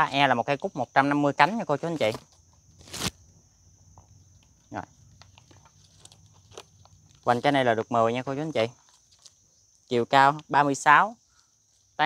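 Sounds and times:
small clicks and leaf rustles: 4.0s - 7.6s, 8.6s - 10.5s.

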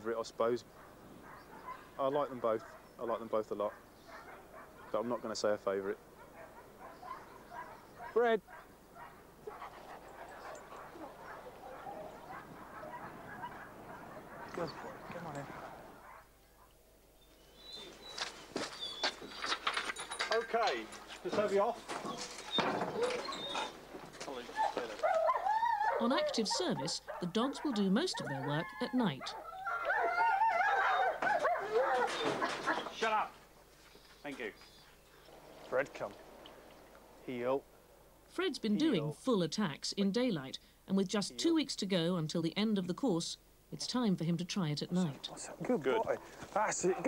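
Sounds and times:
dog barking: 0.7s - 5.3s, 6.2s - 16.8s, 22.9s - 23.8s, 24.4s - 32.9s
dog whining and yelping: 6.4s - 16.2s, 22.0s - 23.8s, 24.5s - 33.0s.

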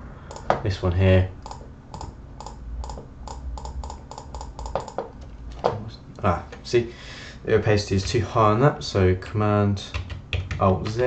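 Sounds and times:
computer keys clicking: 0.3s - 0.5s, 1.4s - 5.3s, 9.9s - 11.0s.

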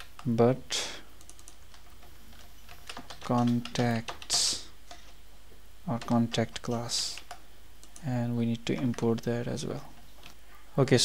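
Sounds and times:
computer keyboard typing: 1.2s - 5.2s, 5.9s - 10.4s.

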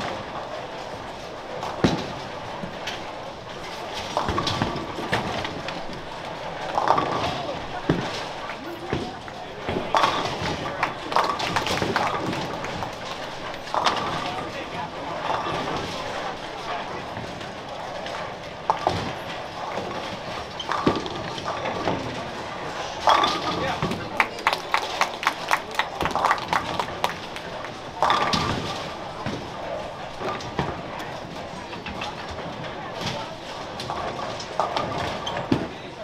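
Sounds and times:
bowling balls knocking pins: 0.0s - 24.2s, 25.8s - 35.8s
background voices and chatter: 0.0s - 36.0s.

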